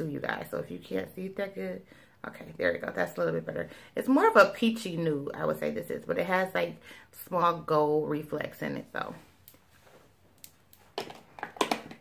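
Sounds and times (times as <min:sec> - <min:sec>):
woman speaking: 0:00.0 - 0:09.3.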